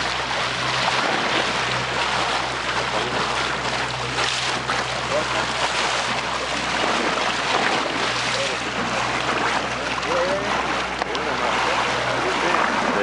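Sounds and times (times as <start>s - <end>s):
water lapping around boat: 0.0s - 13.0s.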